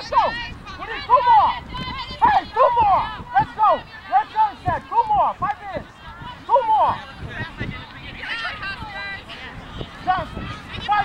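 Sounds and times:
women shouting: 0:00.0 - 0:07.1, 0:08.2 - 0:11.0.

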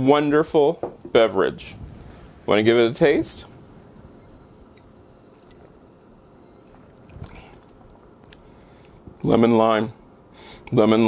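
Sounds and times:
sipping and swallowing soda: 0:03.4 - 0:09.0.

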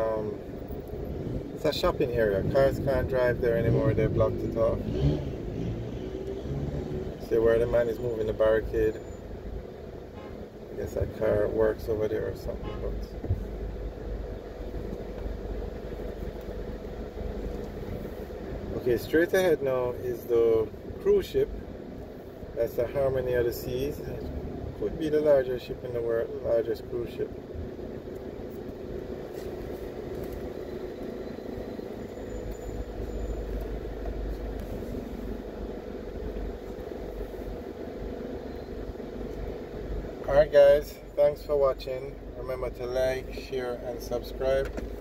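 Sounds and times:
car engine idling: 0:07.2 - 0:45.0
faint steady whine: 0:07.2 - 0:45.0.

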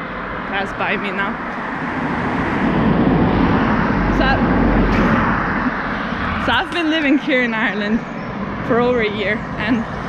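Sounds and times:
cars passing close by: 0:00.0 - 0:10.0.

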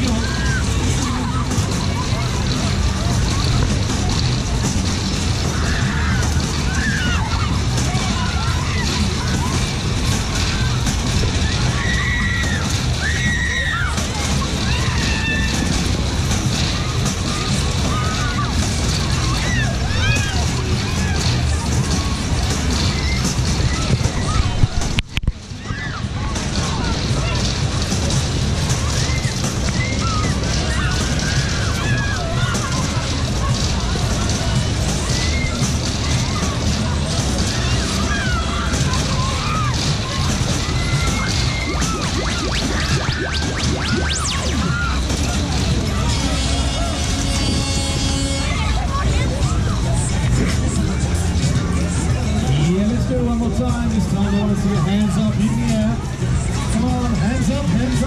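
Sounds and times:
fairground music: 0:00.0 - 0:58.0
fairground ride rumble: 0:00.0 - 0:58.0
mix of voices: 0:00.0 - 0:58.0
high wavering squeals: 0:39.2 - 0:48.6.

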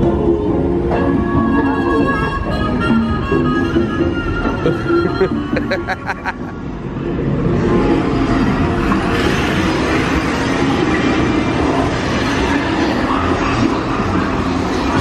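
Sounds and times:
ride music: 0:00.0 - 0:09.1
ride rushing rumbling noise: 0:00.0 - 0:15.0.

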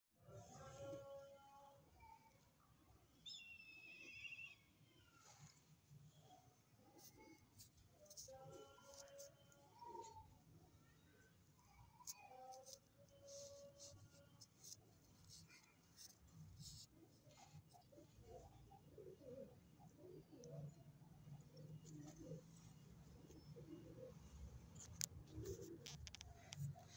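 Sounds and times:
low background noise: 0:00.2 - 0:26.9
faint pigeon cooing: 0:04.8 - 0:26.9.

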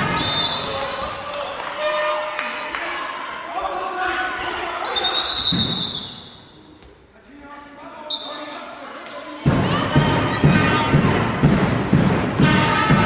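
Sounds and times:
referee's whistle: 0:00.0 - 0:01.1, 0:04.8 - 0:06.6, 0:08.1 - 0:08.5.

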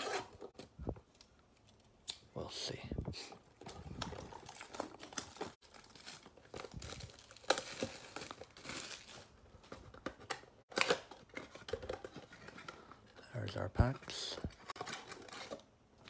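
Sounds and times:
plastic wrapping crinkling: 0:03.7 - 0:10.0.

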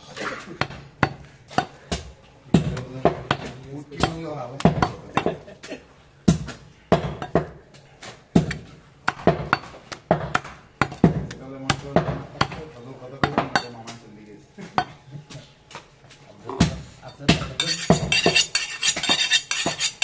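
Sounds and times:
cleaver chopping on wooden block: 0:00.6 - 0:05.3, 0:08.3 - 0:12.6.

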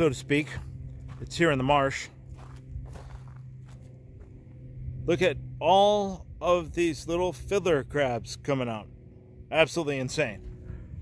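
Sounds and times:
low steady hum: 0:00.0 - 0:11.0
footsteps on wet mud: 0:00.2 - 0:04.5.

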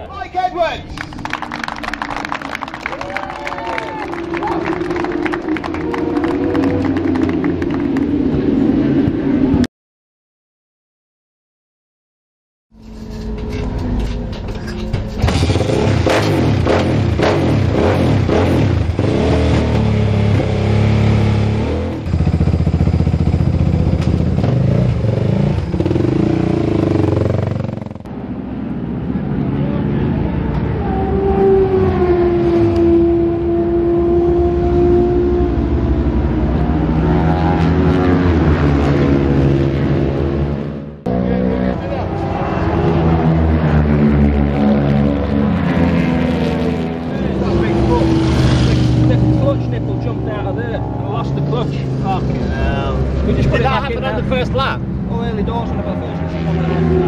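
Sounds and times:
motorcycle engine revving: 0:03.8 - 0:09.6, 0:15.2 - 0:57.0.

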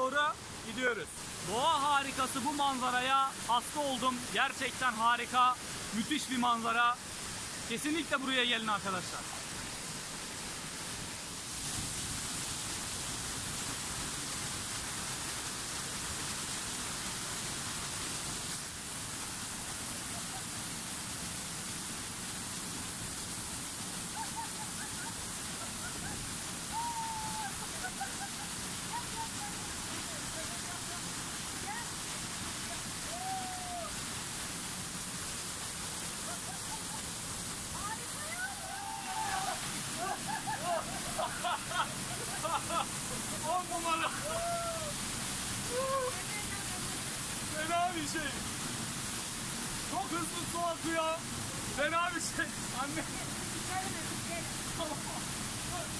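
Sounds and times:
waterfall and rapids rushing: 0:00.0 - 0:55.9
people laughing and calling out: 0:24.2 - 0:29.6, 0:36.2 - 0:37.2, 0:38.0 - 0:45.0, 0:45.7 - 0:46.2.

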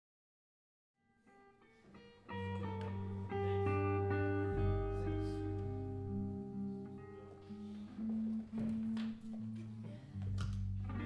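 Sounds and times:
ringing guitar notes: 0:02.3 - 0:09.0
low held notes: 0:02.3 - 0:11.0.

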